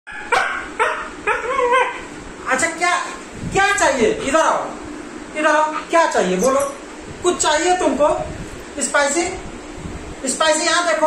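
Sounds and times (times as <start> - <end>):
dog vocalising: 0.1 - 2.1.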